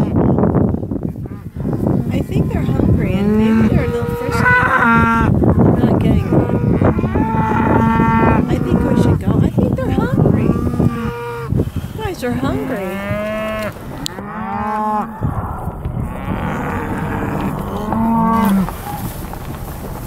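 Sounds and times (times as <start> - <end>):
cattle mooing: 1.2 - 19.0.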